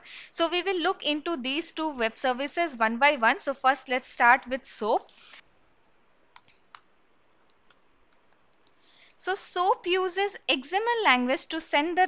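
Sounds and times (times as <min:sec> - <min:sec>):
computer mouse clicks: 0:06.3 - 0:08.8.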